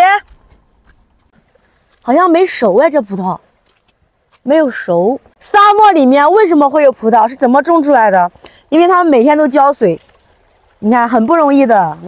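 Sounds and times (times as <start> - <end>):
person speaking: 10.8 - 12.0.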